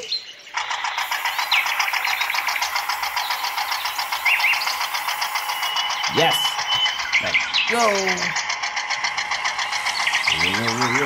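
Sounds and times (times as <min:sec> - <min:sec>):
toy tractor motor whirring: 0:00.5 - 0:11.0.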